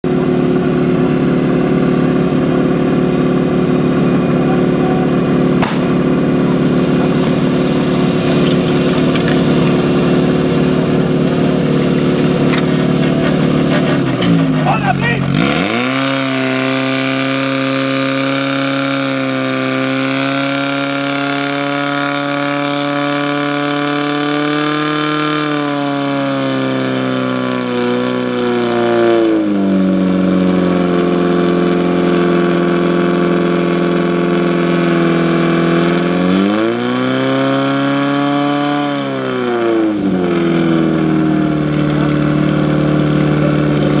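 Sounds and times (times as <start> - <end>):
pump engine running hard: 0.0 - 44.0.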